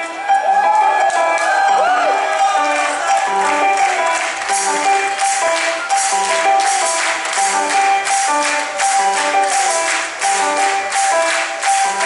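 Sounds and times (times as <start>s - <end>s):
keyboard melody: 0.0s - 12.0s.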